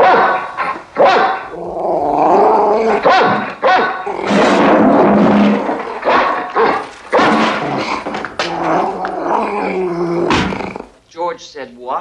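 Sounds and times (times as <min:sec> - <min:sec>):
dog growling and barking: 0:00.0 - 0:10.9.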